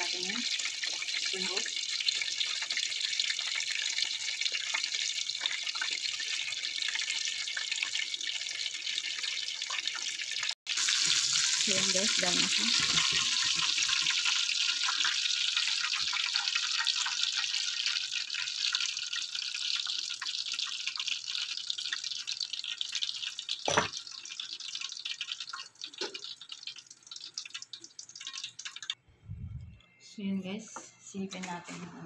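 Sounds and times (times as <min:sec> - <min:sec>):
food deep-frying in oil: 0:00.0 - 0:29.0.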